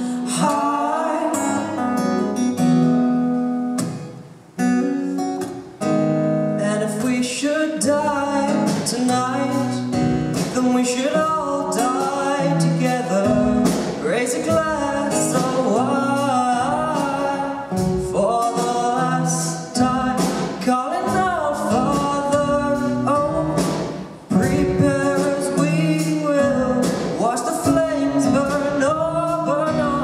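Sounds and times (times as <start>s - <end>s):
acoustic guitar: 0.0s - 30.0s.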